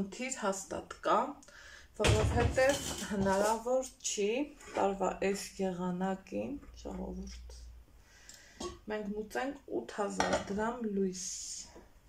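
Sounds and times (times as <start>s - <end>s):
woman talking: 0.0s - 1.4s, 2.0s - 7.7s, 8.8s - 11.8s.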